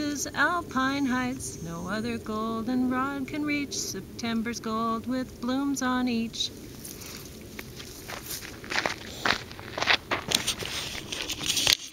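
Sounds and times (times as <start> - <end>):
footsteps through tall grass: 6.5 - 11.9.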